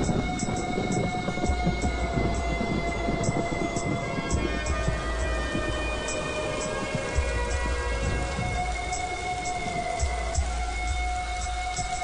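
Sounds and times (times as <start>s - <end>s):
film score held notes: 0.0s - 12.0s
steady rain falling: 0.0s - 12.0s.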